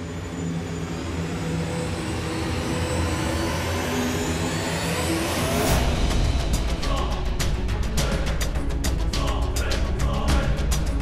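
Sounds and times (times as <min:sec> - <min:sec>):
sustained low notes: 0:01.2 - 0:11.0.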